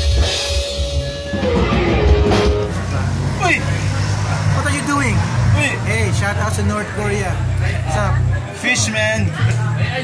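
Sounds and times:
live rock band music: 0:00.0 - 0:06.1
men talking: 0:02.7 - 0:10.0.

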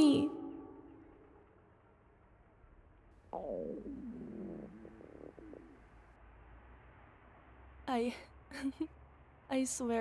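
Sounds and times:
stomach growling: 0:03.4 - 0:05.8.

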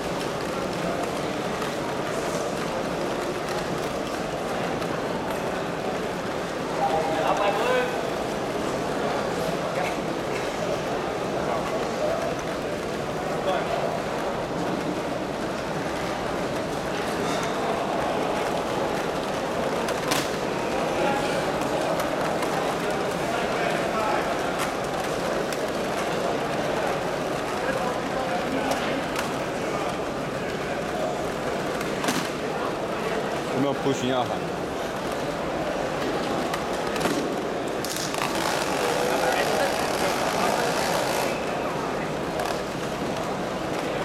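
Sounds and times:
crowd chatter in a hall: 0:00.0 - 0:44.0.

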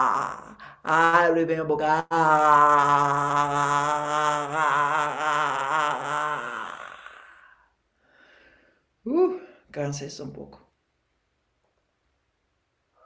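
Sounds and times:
man sustained aaah: 0:01.9 - 0:07.6
faint breath: 0:07.1 - 0:09.7.

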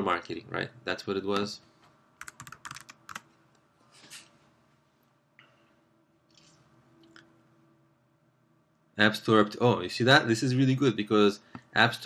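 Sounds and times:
typing on computer keyboard: 0:02.2 - 0:03.3.

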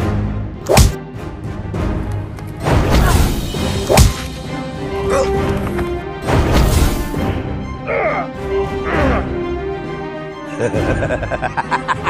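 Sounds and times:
action background music: 0:00.0 - 0:12.0.

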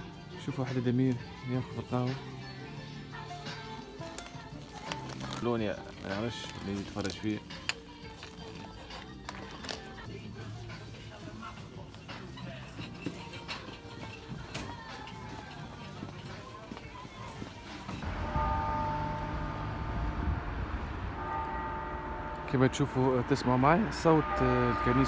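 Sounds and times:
in-store music: 0:00.0 - 0:25.0
church bells ringing: 0:18.0 - 0:25.0
traffic rumble: 0:18.0 - 0:25.0.

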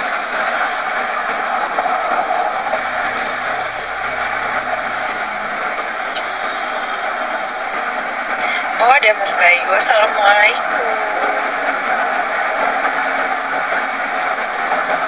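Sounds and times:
car cabin road and engine noise: 0:00.0 - 0:15.0.

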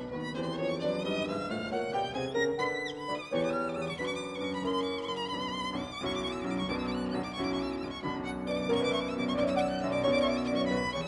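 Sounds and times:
violin playing classical piece: 0:00.0 - 0:11.0.

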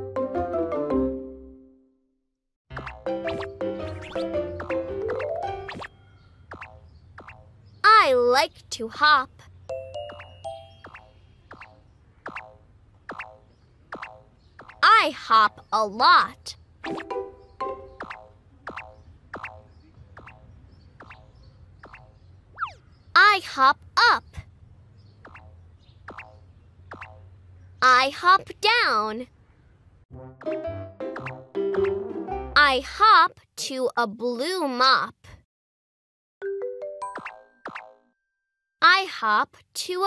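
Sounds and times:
cartoon springy boing: 0:02.7 - 0:05.9, 0:16.9 - 0:20.4, 0:30.4 - 0:32.0, 0:37.0 - 0:38.1
downward-swooping cartoon boings: 0:10.1 - 0:14.8, 0:30.4 - 0:32.0.

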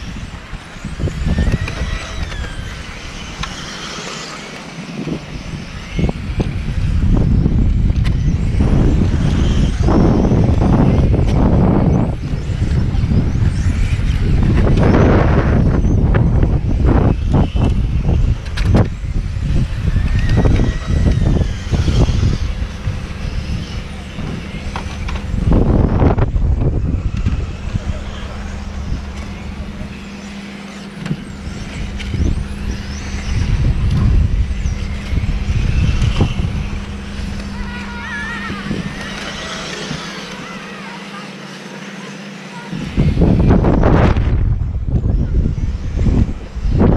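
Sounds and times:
electric rc cars whining: 0:00.0 - 0:46.9
loud low rumble: 0:06.1 - 0:39.3, 0:42.8 - 0:46.9.

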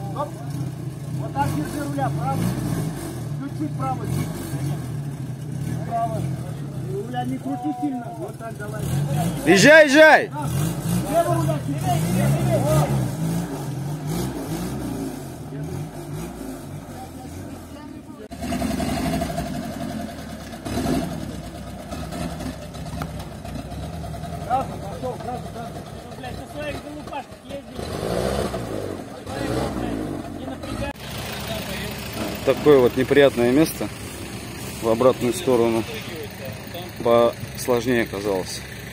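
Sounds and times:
off-road vehicle engines revving: 0:00.0 - 0:38.9.

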